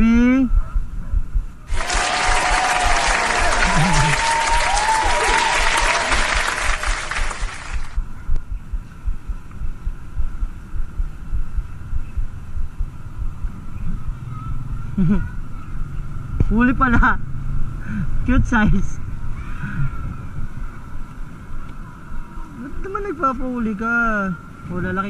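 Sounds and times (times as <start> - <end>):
crowd clapping: 1.7 - 8.0
wind rumble on microphone: 7.4 - 25.0.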